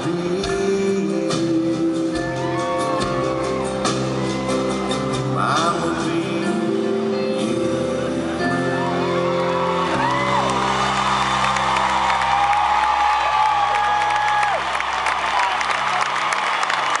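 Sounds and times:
crowd cheering and whooping: 2.2s - 5.5s, 8.1s - 17.0s.

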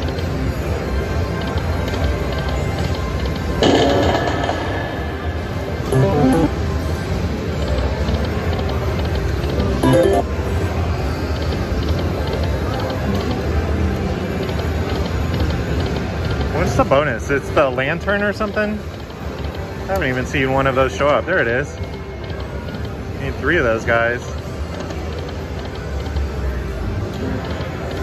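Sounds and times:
steady background din: 0.0s - 28.0s
slot machine chiming tunes: 5.9s - 6.8s, 9.8s - 10.6s.

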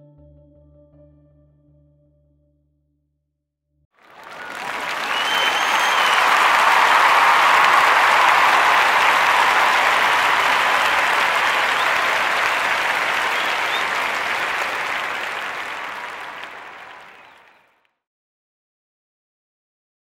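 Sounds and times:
audience applauding: 4.0s - 17.7s
crowd whistle: 4.0s - 17.7s.

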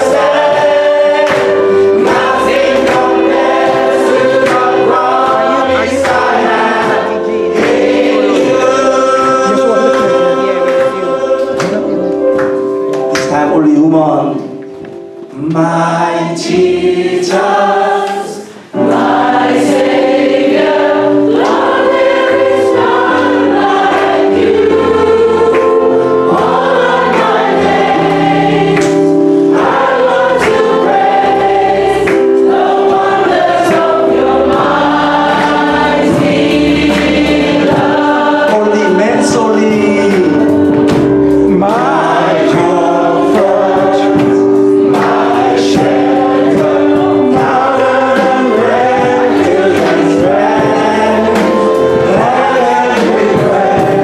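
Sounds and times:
group singing in harmony: 0.0s - 12.8s, 15.2s - 54.0s
keyboard: 0.0s - 54.0s.

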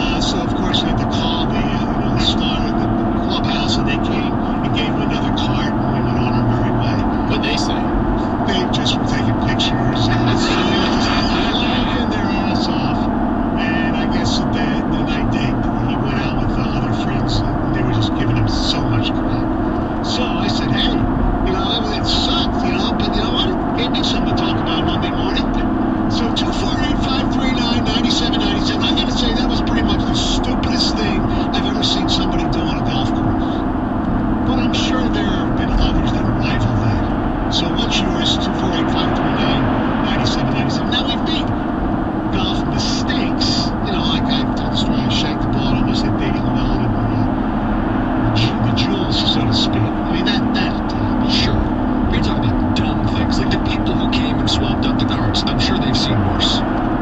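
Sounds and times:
car road and engine noise: 0.0s - 57.0s
indistinct voices: 0.0s - 57.0s.

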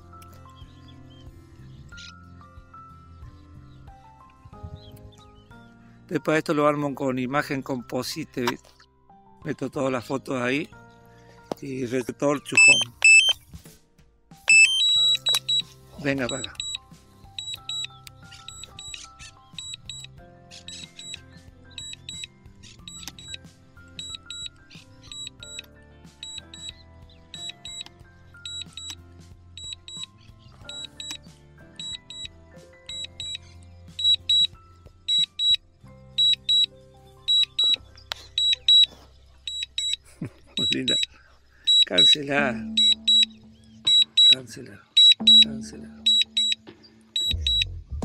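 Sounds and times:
background music: 0.0s - 48.0s
high double beeps: 12.6s - 13.4s, 14.5s - 15.6s, 16.3s - 16.8s, 34.0s - 34.5s, 40.6s - 41.1s, 41.7s - 44.4s, 45.0s - 47.7s.

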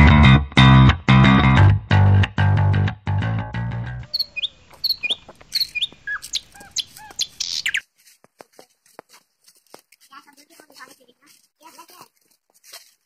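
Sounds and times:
guitar music: 0.0s - 4.1s
bird chirps and calls: 4.0s - 7.8s.

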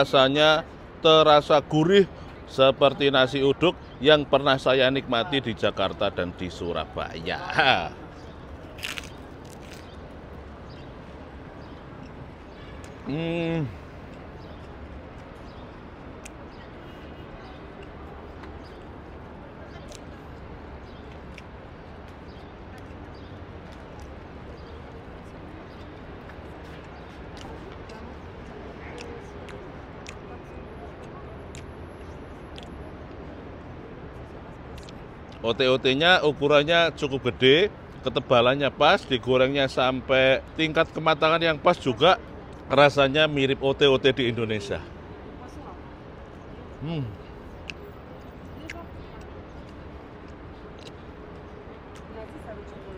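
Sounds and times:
low urban rumble: 0.0s - 52.9s
crunch: 8.6s - 10.1s, 32.5s - 32.8s, 49.2s - 51.1s
person chewing: 8.8s - 10.0s, 50.7s - 51.0s
murmur of voices: 40.7s - 49.5s
mouth clicks: 46.8s - 47.8s, 48.4s - 51.2s.

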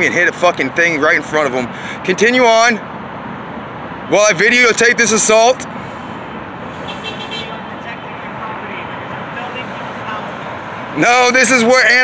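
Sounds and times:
city traffic: 0.0s - 12.0s.

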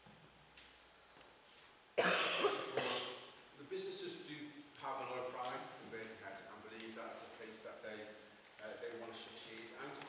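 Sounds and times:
person coughing: 2.0s - 3.2s.

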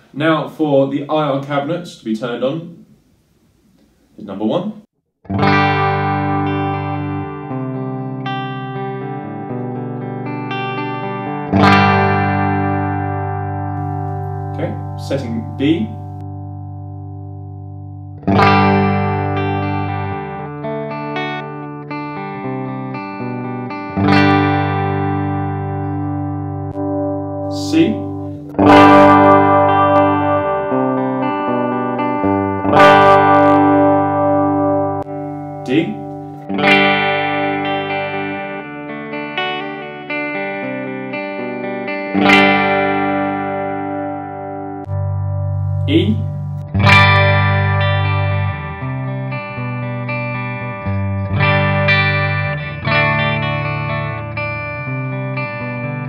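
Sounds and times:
electric guitar chords ringing: 5.2s - 56.0s.

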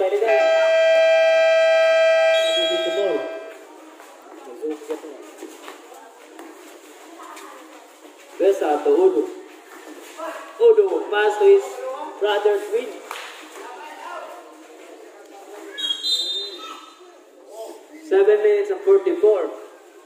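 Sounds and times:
game clock buzzer: 0.6s - 3.5s.

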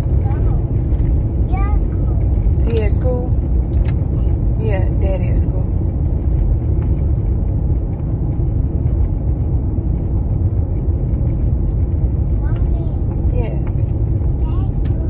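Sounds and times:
road and wind noise in car: 0.0s - 15.0s.

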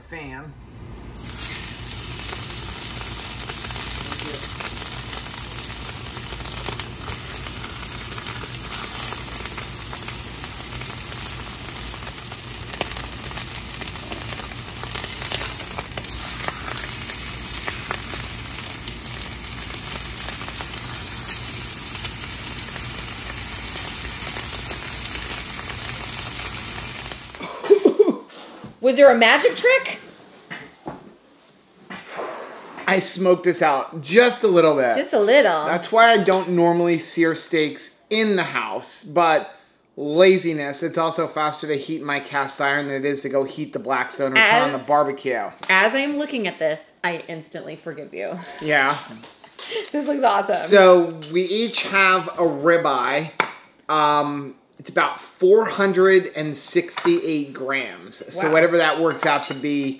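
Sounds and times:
steaks sizzling in a skillet: 1.2s - 27.4s.

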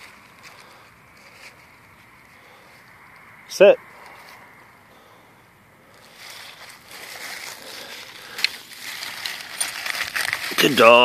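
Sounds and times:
footsteps through dry leaves: 0.0s - 2.9s, 5.9s - 11.0s.

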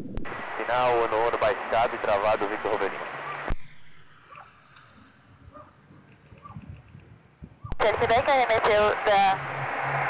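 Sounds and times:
radio hiss: 0.3s - 4.2s, 7.8s - 9.6s
voice over radio: 0.6s - 3.0s, 7.8s - 9.4s.

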